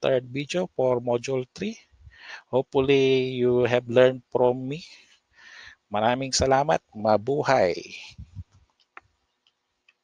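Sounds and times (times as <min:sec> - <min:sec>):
soft low thumps: 0:08.1 - 0:08.5.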